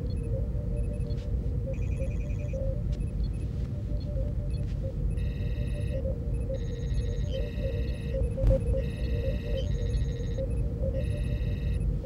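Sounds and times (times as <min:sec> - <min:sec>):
electronic computer beeps and chirps: 0:00.0 - 0:12.0.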